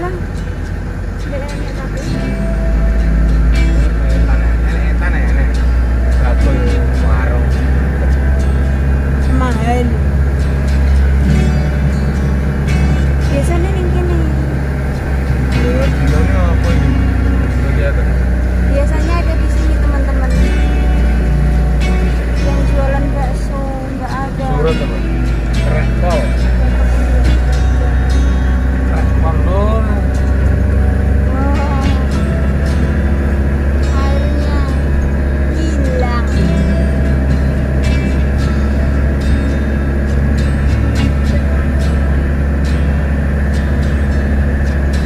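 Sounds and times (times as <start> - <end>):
car driving low rumble: 0.0 - 45.0.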